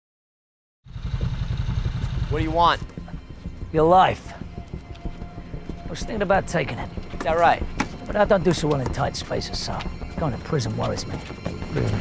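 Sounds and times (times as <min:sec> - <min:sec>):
low throbbing engine rumble: 0:00.9 - 0:12.0.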